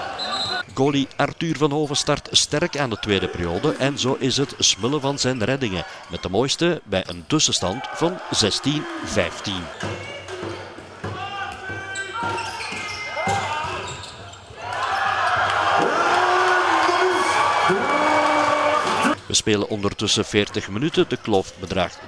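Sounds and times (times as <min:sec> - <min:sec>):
crowd shouting and cheering: 0:00.0 - 0:01.4, 0:02.6 - 0:19.2
players shouting: 0:07.6 - 0:19.2.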